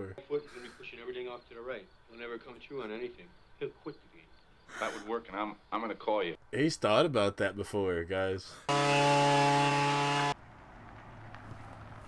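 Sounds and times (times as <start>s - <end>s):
loud electric buzz: 8.7s - 10.4s.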